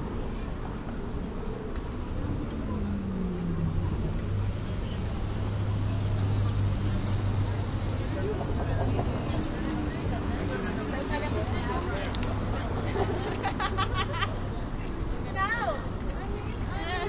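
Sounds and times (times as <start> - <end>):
low engine hum: 0.0 - 17.0
people's voices: 0.0 - 17.0
road noise: 0.0 - 17.0.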